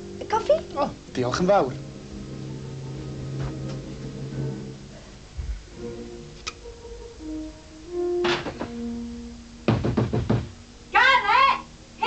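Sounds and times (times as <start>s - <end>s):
soft background music: 0.0s - 12.0s
quick knocks: 9.7s - 10.6s.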